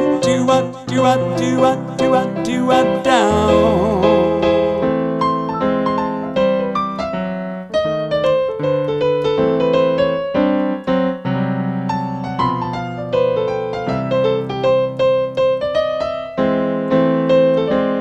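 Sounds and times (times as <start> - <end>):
digital piano swing playing: 0.0 - 18.0.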